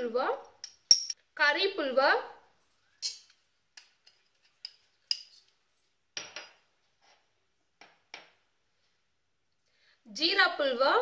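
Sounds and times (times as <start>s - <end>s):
metal spoon clinking on ceramic dish: 0.6s - 1.2s, 3.0s - 5.4s.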